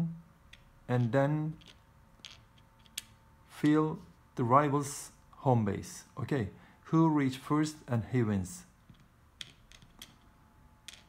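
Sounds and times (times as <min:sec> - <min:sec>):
small balls clicking into board: 0:08.9 - 0:11.0.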